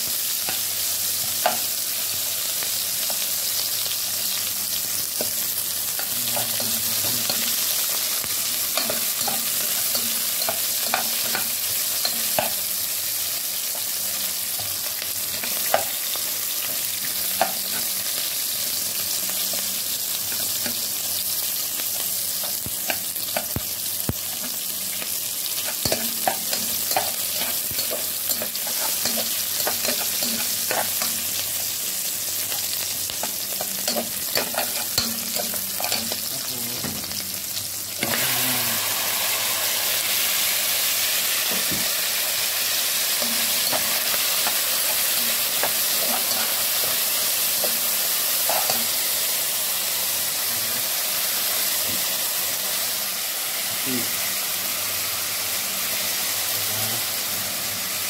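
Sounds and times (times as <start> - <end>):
onions sizzling in hot oil: 0.0 - 58.0
metal spatula scraping pot: 25.6 - 31.2, 33.2 - 36.3.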